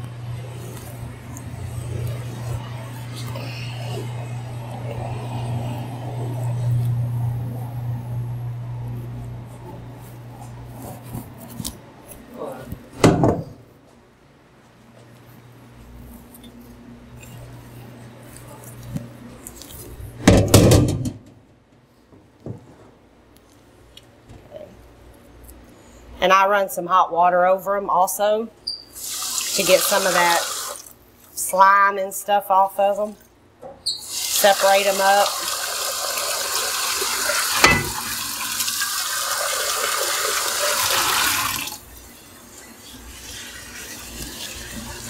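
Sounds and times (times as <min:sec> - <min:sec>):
low hum: 0:00.0 - 0:10.7
metal clank: 0:37.6 - 0:38.0
metal pot clattering into sink: 0:37.6 - 0:38.2.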